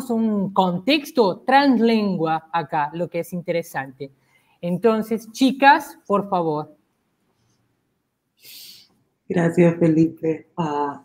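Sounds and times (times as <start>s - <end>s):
soft breathy hiss: 8.3s - 8.9s.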